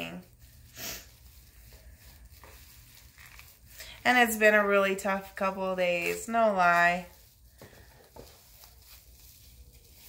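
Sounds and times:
plastic packaging rustling: 0.0s - 10.0s.

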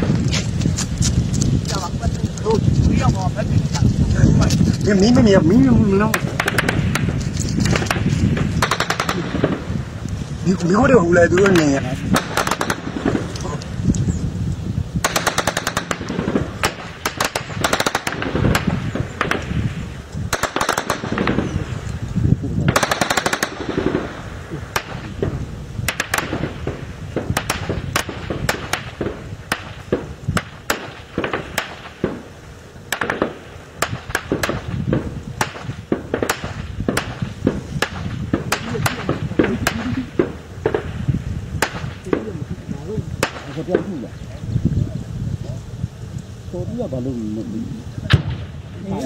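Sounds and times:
single gunshots: 6.0s - 9.8s, 11.1s - 13.6s, 15.0s - 19.6s, 20.3s - 21.7s, 22.7s - 25.3s, 25.9s - 32.2s, 32.9s - 42.4s, 43.2s - 44.0s, 48.1s - 48.6s
automatic gunfire bursts: 6.1s - 9.7s, 11.4s - 13.3s, 15.0s - 19.4s, 20.3s - 21.5s, 22.7s - 24.2s.

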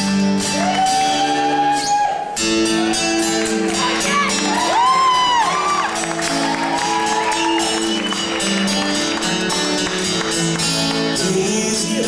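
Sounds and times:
strummed acoustic guitar: 0.0s - 12.0s
audience whoop: 0.4s - 8.7s.

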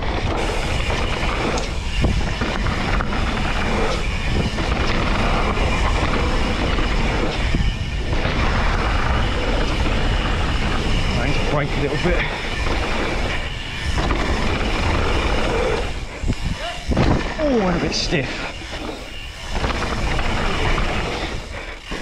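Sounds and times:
bike rattling and knocking: 0.0s - 22.0s
bike tyres rolling on dirt: 0.0s - 22.0s
wind rushing over microphone: 0.0s - 22.0s.

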